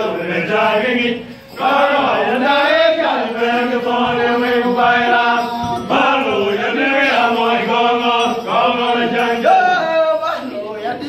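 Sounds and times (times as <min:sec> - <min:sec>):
men singing together: 0:00.0 - 0:11.0.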